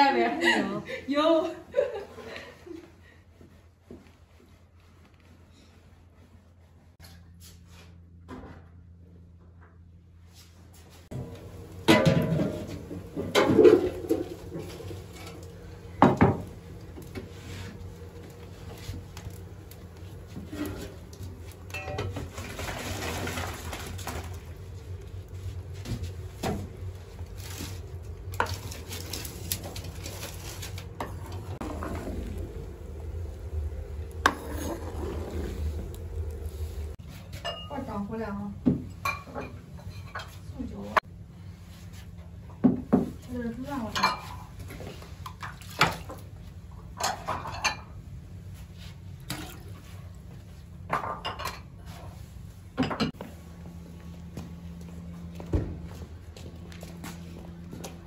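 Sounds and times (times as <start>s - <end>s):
steady low hum: 0.0s - 58.0s
metal ladle clattering on bowls: 21.7s - 23.8s
pot of water bubbling: 31.0s - 37.0s.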